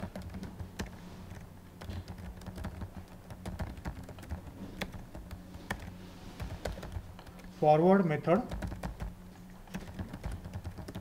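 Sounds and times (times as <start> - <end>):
keyboard typing clicks: 0.0 - 7.5, 8.5 - 9.1, 9.7 - 11.0
faint steady hum: 0.0 - 11.0.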